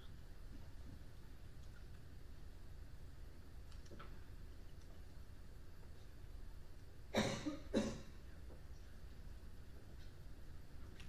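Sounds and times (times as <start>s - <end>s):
quiet room noise: 0.0s - 11.0s
person coughing: 7.2s - 8.2s.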